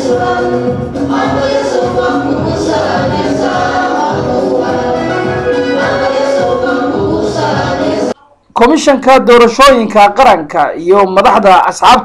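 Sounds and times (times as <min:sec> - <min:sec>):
group singing in unison: 0:00.0 - 0:08.4.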